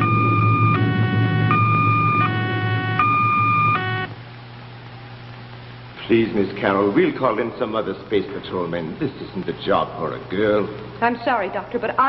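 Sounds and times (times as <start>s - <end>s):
electronic two-tone signal: 0.0s - 4.1s
steady low hum: 0.0s - 12.0s.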